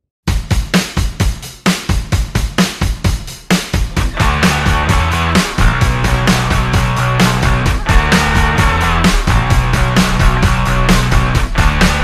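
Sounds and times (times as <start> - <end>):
rock music with fast drums: 0.3 - 12.0.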